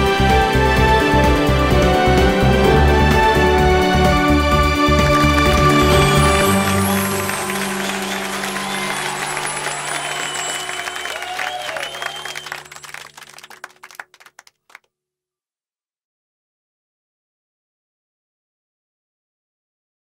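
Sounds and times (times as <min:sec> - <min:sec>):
closing music held chord: 0:00.9 - 0:11.3
crowd applauding and cheering: 0:01.0 - 0:14.8
crowd shouts: 0:06.8 - 0:12.6.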